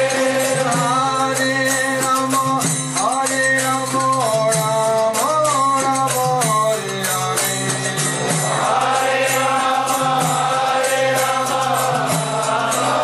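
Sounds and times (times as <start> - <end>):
voices chanting: 0.0 - 1.6, 8.1 - 13.0
jingling hand percussion: 0.0 - 13.0.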